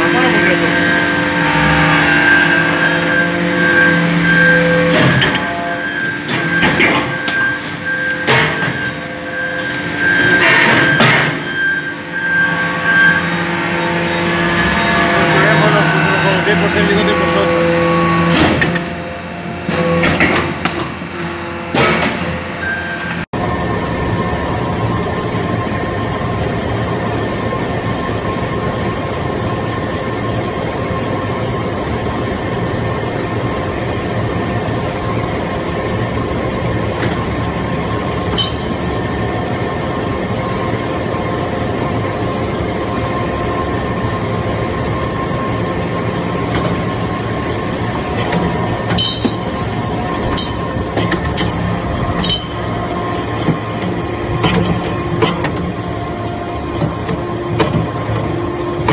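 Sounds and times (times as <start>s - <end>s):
hydraulic press humming: 0.0s - 23.3s, 35.9s - 58.9s
metal clinks and knocks: 48.9s - 49.5s, 52.2s - 52.6s.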